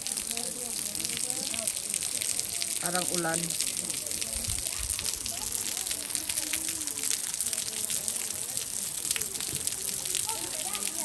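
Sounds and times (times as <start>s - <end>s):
faint voices talking: 0.0s - 11.0s
water falling and splashing: 0.0s - 11.0s.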